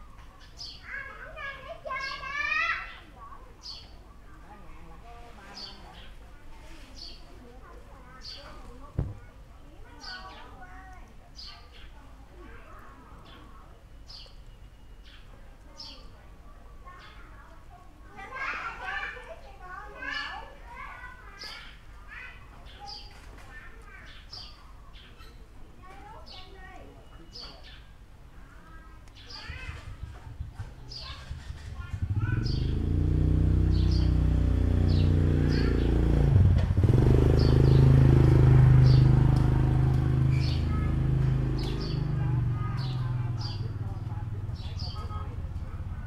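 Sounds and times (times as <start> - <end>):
children talking and calling: 0.0 - 46.0
engine humming: 7.7 - 9.8, 29.4 - 46.0.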